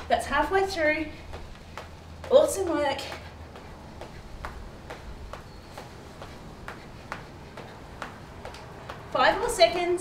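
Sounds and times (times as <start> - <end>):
feet landing from jumping jacks: 0.0 - 10.0.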